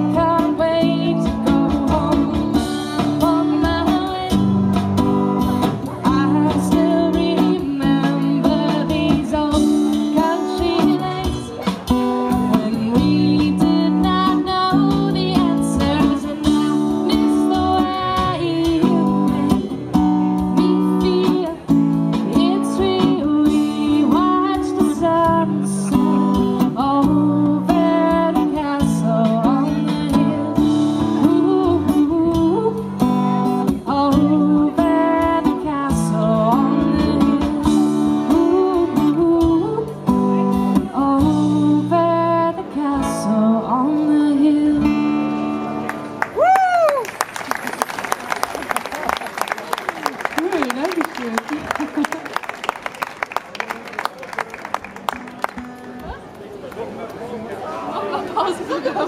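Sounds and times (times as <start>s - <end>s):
strummed acoustic guitar: 0.0s - 46.2s.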